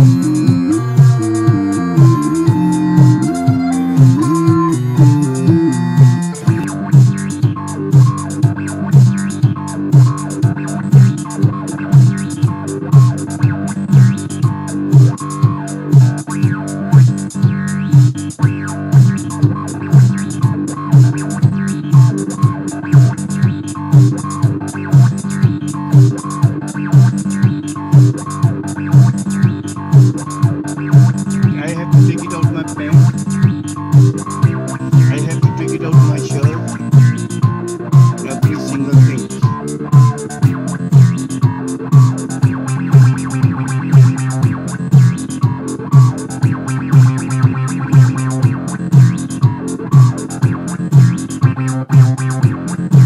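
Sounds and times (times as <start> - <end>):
synthesizer bass line: 0.0 - 17.1, 30.9 - 53.0
electronic drum beat: 0.0 - 53.0.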